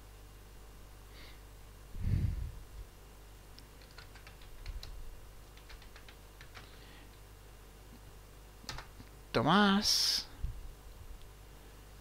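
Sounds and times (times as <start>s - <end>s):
keyboard typing: 3.8s - 6.8s, 8.7s - 9.0s.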